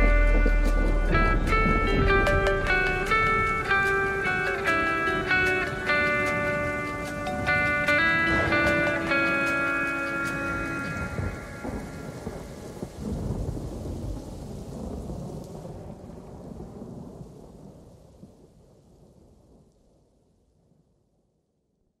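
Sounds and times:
rolling thunder: 0.0 - 19.7
steady rain: 0.0 - 21.0.

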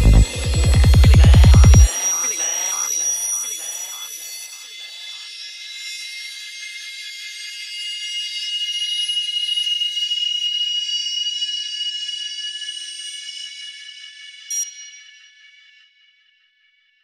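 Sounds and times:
filtered rhythmic synth pattern: 0.0 - 2.8
high sustained synth tones: 0.0 - 6.5.

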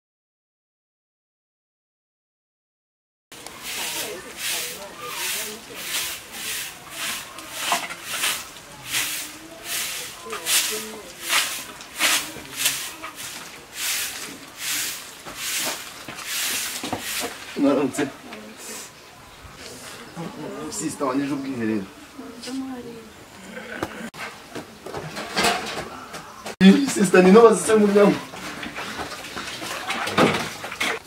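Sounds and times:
broom sweeping dirt: 3.4 - 18.0.

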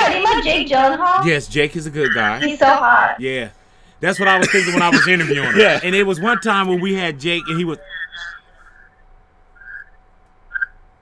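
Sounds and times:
video chat line hiss: 0.0 - 8.7
faint steady hum: 0.0 - 11.0.

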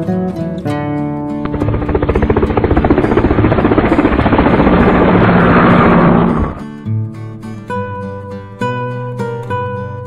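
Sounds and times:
propeller aircraft rotor chop: 1.4 - 6.7.

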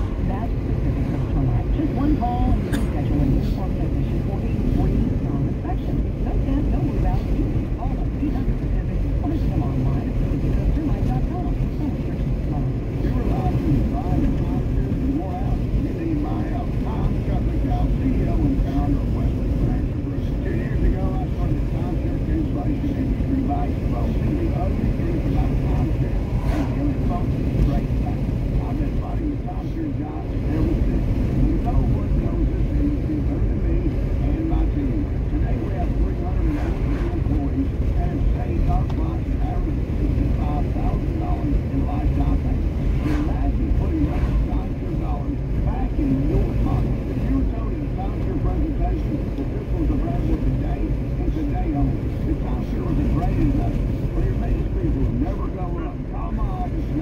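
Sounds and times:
car road noise rumble: 0.0 - 57.0
muffled voices: 0.0 - 57.0.

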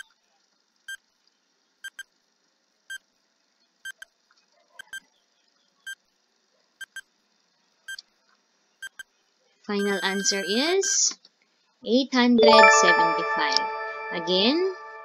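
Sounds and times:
countdown timer beeps: 9.8 - 11.0, 12.4 - 15.0.

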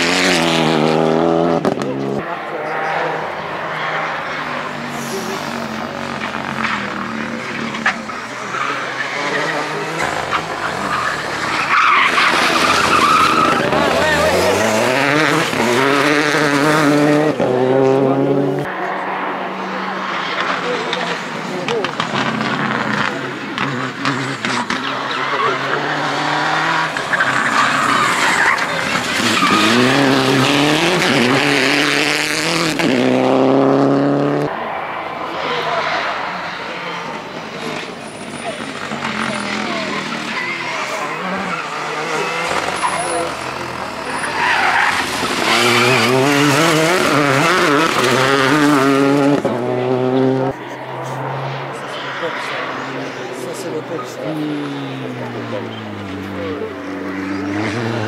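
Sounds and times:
rally cars passing at full throttle: 0.0 - 58.0.

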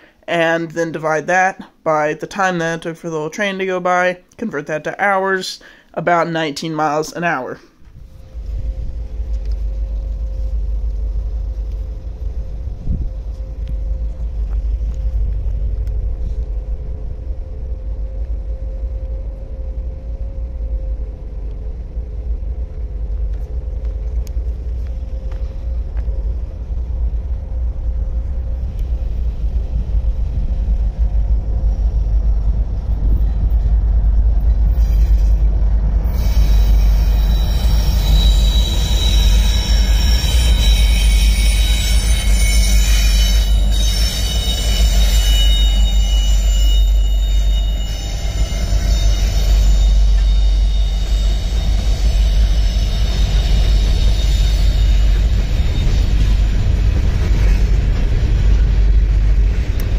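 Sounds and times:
freight train rumbling on rails: 7.7 - 59.9
wheel squeal: 34.6 - 58.6.

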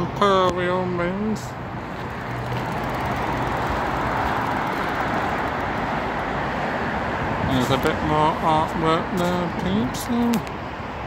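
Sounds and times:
road traffic noise: 0.0 - 11.0.

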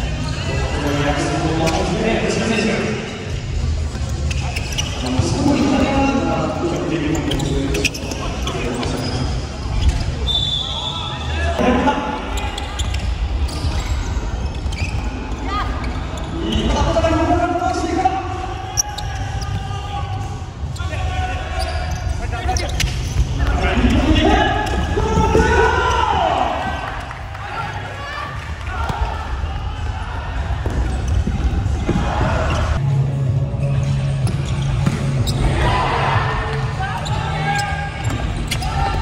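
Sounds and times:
ball kicks and thuds: 34.2 - 35.2
people shouting: 35.4 - 39.0.

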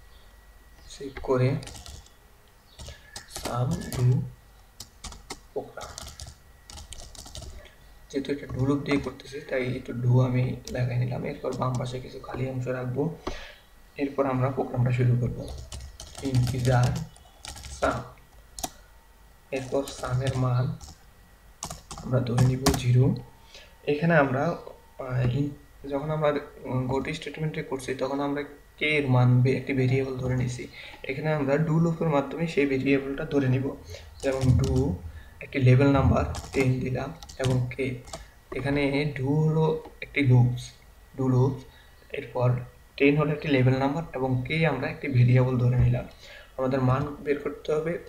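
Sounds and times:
man talking: 0.9 - 1.8, 3.3 - 4.3, 5.6 - 6.1, 8.1 - 13.2, 14.0 - 15.6, 16.2 - 17.1, 17.7 - 18.2, 19.5 - 20.8, 22.0 - 48.0
keyboard typing: 1.1 - 7.7, 10.6 - 12.1, 15.3 - 18.8, 19.6 - 21.0, 21.6 - 23.2, 33.9 - 38.7
keyboard keystrokes: 1.6 - 2.1, 2.8 - 4.1, 4.8 - 7.6, 36.3 - 38.2.

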